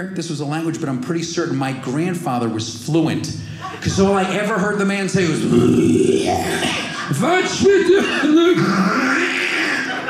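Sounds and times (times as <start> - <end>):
man imitating throat clearing: 5.4 - 9.9.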